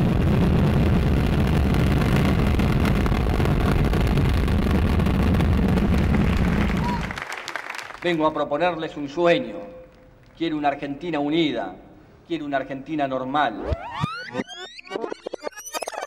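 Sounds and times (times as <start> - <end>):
rocket engines roaring: 0.0 - 7.1.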